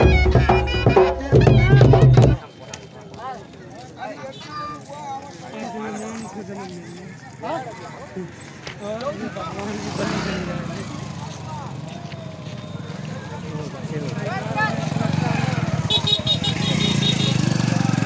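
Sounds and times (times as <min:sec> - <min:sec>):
crowd voices: 0:00.0 - 0:18.0.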